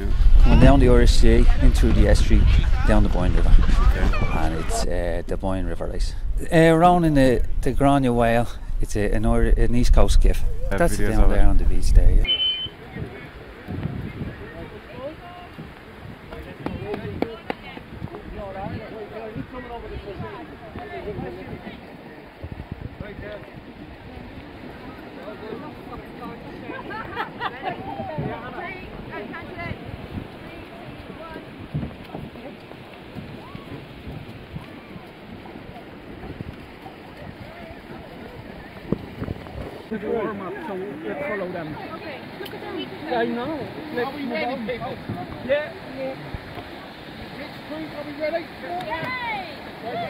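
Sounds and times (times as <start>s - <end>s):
people talking indistinctly: 0.0s - 32.9s, 36.7s - 50.0s
rain rushing: 0.0s - 50.0s
surf: 0.0s - 50.0s
wind buffeting microphone: 0.0s - 50.0s
faint voices of people: 12.2s - 33.8s.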